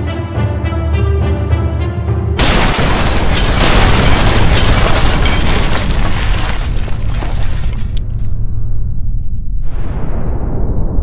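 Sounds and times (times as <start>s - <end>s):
debris crackling: 2.4s - 9.1s
deep steady rumble: 6.9s - 11.0s.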